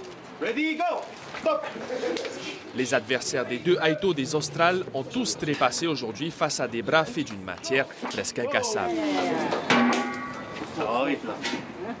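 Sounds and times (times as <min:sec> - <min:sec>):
person speaking: 0:02.8 - 0:09.5.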